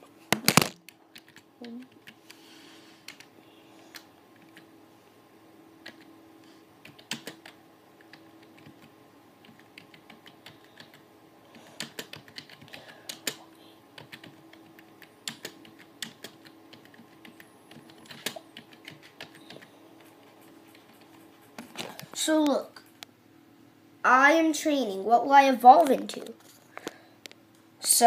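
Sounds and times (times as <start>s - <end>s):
faint steady hum: 0.0s - 28.0s
computer keyboard typing: 0.5s - 2.3s, 3.0s - 3.3s, 3.9s - 4.7s, 5.8s - 6.1s, 6.8s - 13.4s, 14.0s - 21.3s.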